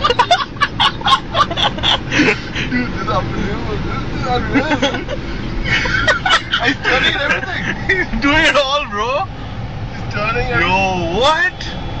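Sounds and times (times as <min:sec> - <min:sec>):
road and engine rumble inside car: 0:00.0 - 0:12.0.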